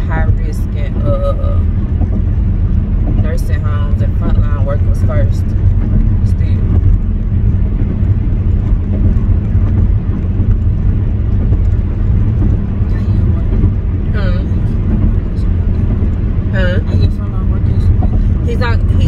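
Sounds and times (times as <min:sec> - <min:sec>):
road and engine rumble in car: 0:00.0 - 0:19.0.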